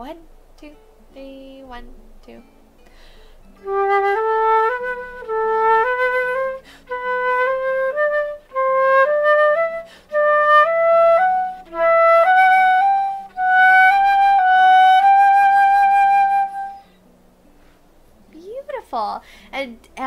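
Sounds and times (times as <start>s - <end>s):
quick breaths: 2.8s - 3.4s, 6.6s - 6.9s, 9.9s - 10.2s, 19.2s - 19.5s
flute playing slow tones: 3.5s - 17.0s.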